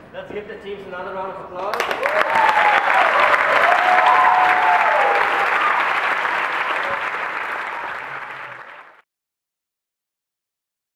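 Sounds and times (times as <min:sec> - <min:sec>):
audience applauding: 0:01.7 - 0:09.0.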